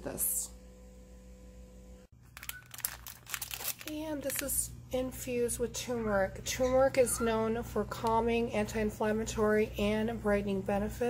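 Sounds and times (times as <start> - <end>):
plastic packaging crinkling: 2.2 - 4.6.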